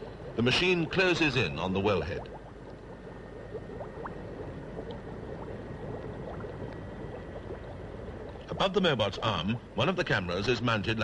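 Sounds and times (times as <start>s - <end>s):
steady low rumble: 0.0s - 11.0s
underwater bubbling and gurgling: 0.0s - 11.0s.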